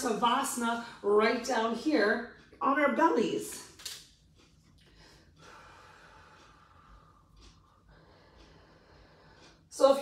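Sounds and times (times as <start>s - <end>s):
soft drawn-out breath: 4.8s - 9.6s.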